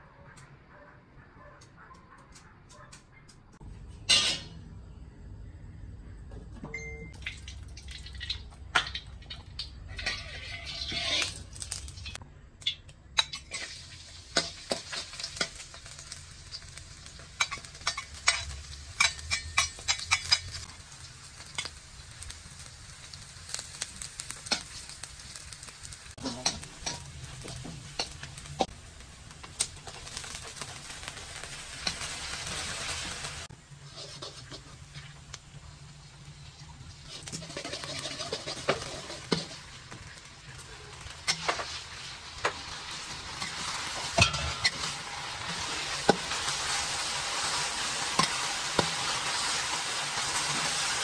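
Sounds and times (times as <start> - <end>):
steady low hum: 3.6 - 7.1
metal spatula scraping wok: 4.0 - 4.6, 9.3 - 12.2, 13.2 - 20.7, 29.8 - 35.3, 37.0 - 51.0
food sizzling in hot oil: 7.1 - 51.0.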